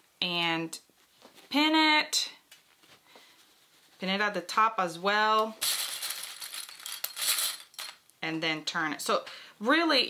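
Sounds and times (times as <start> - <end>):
fabric rustling: 2.6 - 4.2.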